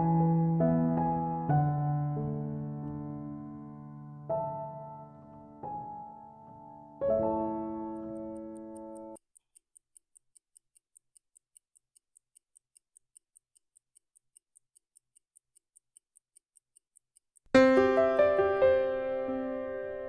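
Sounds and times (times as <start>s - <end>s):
piano music: 0.0s - 9.2s, 17.6s - 20.0s
pocket watch ticking: 5.8s - 17.5s.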